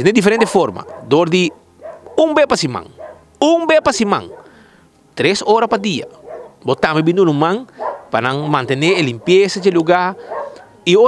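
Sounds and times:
dogs barking: 0.4 - 4.8, 5.5 - 11.0
person speaking: 5.2 - 11.0.

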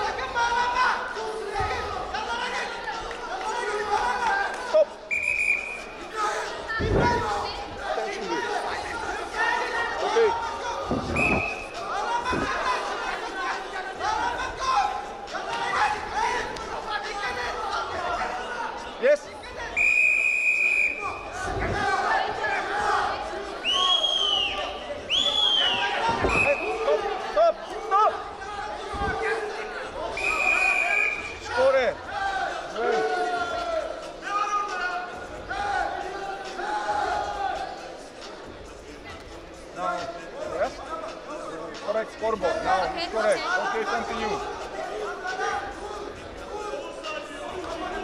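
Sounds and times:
voices shouting in echoing hall: 0.0 - 48.0
referee's whistle blast: 5.1 - 6.0, 11.0 - 11.8, 19.8 - 21.2, 23.6 - 26.8, 30.1 - 31.4.

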